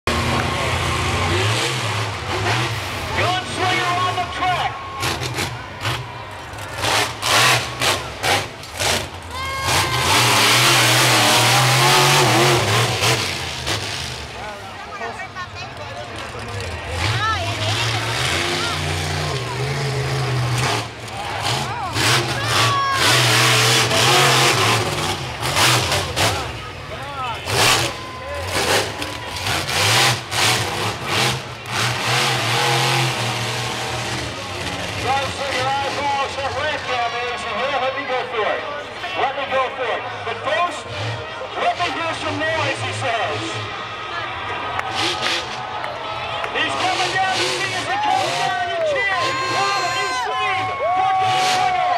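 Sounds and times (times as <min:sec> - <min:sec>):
monster truck engine revving: 0:00.1 - 0:37.5, 0:40.0 - 0:51.9
crowd yelling: 0:00.1 - 0:51.9.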